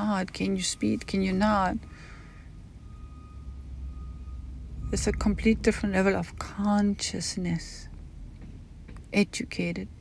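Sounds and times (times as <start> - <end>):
woman speaking: 0.0 - 1.8, 4.9 - 7.9, 9.1 - 10.0
faint high steady tone: 0.0 - 7.8
low background rumble: 0.0 - 10.0.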